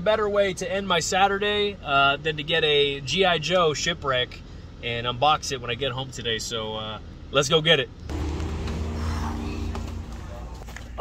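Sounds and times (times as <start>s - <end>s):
low mechanical hum: 7.0s - 11.0s.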